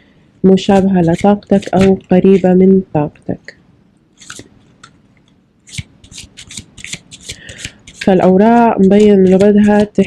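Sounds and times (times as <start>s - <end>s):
cards being shuffled: 4.2s - 10.0s.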